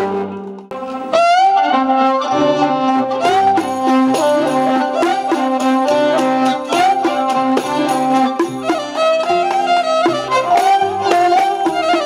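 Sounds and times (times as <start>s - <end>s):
violin melody: 0.0s - 12.0s.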